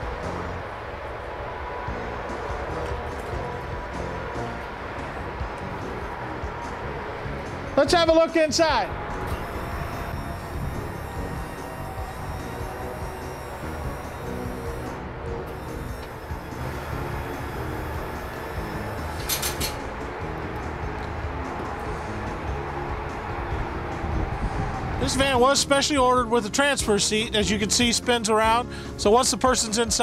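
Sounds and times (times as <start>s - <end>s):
background music: 0.0s - 30.0s
wheelchair lift motor running: 9.1s - 20.0s.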